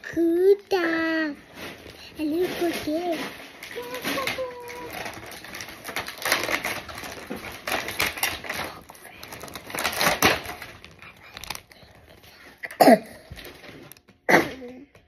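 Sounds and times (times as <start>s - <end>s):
child's voice: 0.0s - 1.5s, 2.2s - 5.2s
plastic packaging crackling: 0.2s - 14.2s.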